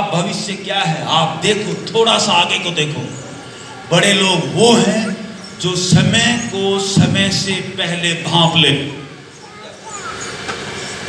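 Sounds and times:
room noise hiss: 0:00.0 - 0:09.5
faint voices: 0:00.0 - 0:10.4.

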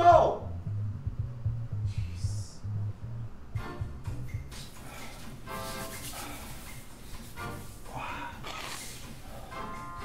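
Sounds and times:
sustained tones over low bass: 0:00.0 - 0:04.5.

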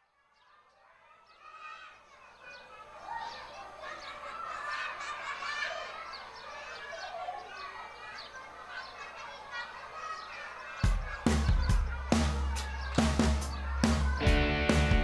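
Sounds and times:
loud music with drums and bass: 0:10.8 - 0:15.0.

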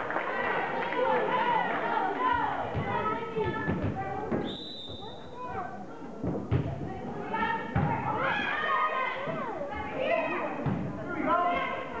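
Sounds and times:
voices echoing in a gym: 0:00.0 - 0:12.0
referee's whistle: 0:04.4 - 0:05.2.

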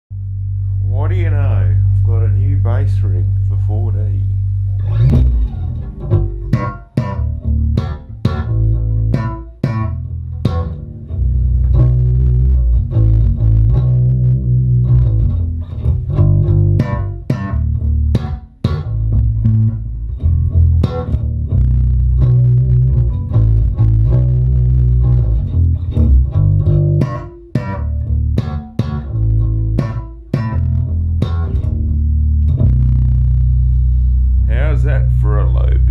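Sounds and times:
electric bass guitar: 0:00.1 - 0:35.9.

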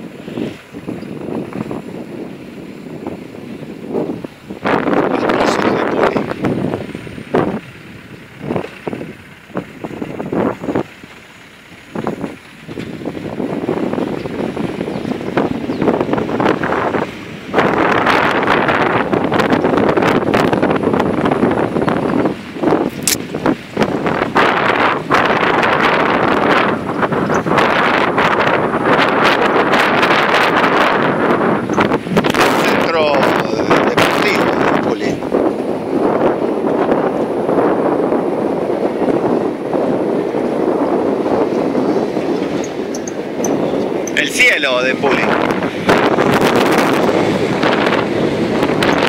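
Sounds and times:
vehicle rumble: 0:00.0 - 0:49.0
wind buffeting microphone: 0:00.0 - 0:49.0.

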